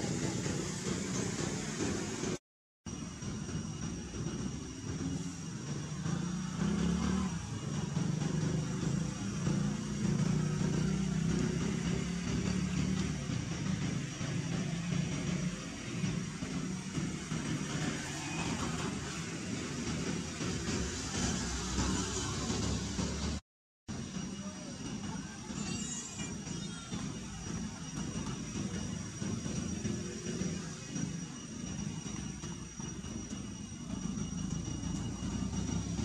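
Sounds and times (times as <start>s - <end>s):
thin high tone: 24.2s - 36.0s.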